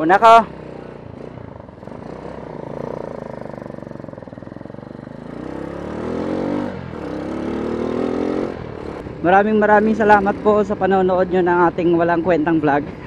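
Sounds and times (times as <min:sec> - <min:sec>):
motorcycle engine accelerating: 0:00.0 - 0:13.0.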